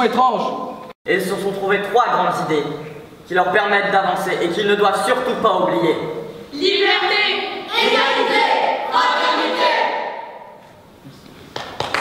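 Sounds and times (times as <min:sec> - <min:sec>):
voices in unison: 0:06.5 - 0:10.5
hand claps: 0:11.5 - 0:12.0.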